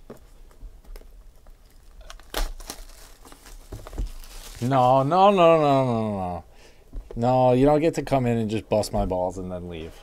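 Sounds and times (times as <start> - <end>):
plastic wrapper crinkling: 0.8 - 5.2
plastic wrapper ripping: 0.9 - 5.1.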